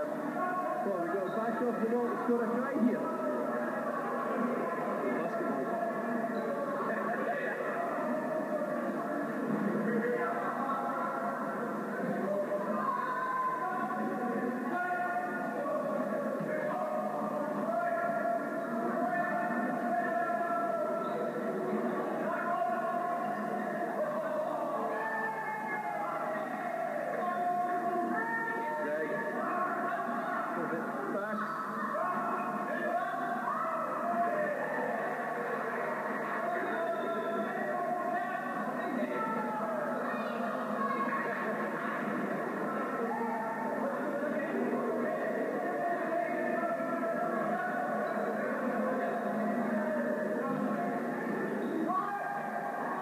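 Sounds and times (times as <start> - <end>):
voices from television: 0.0 - 53.0.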